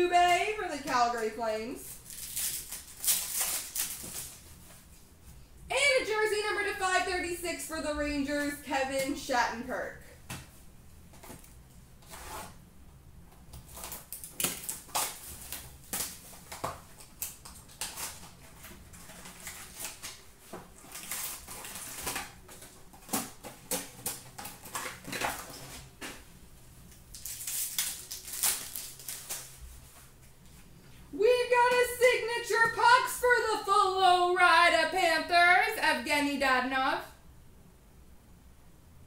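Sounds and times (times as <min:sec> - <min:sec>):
trading cards rustling: 0:00.2 - 0:04.9, 0:27.1 - 0:30.6.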